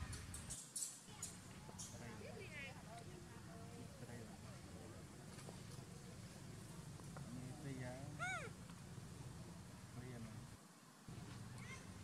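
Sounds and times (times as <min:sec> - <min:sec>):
macaque high call: 0:08.2 - 0:08.6.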